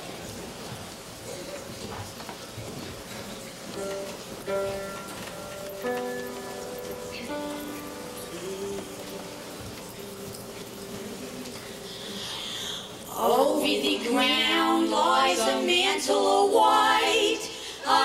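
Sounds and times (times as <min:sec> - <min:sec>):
slow instrumental melody: 0:03.7 - 0:11.5.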